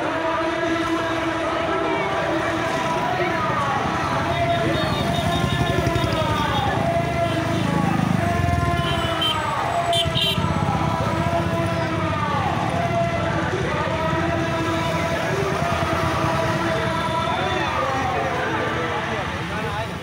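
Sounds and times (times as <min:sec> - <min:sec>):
cars passing: 0:00.0 - 0:20.0
motorbike engines: 0:00.0 - 0:20.0
sirens wailing: 0:00.0 - 0:20.0
voices of onlookers: 0:00.0 - 0:20.0.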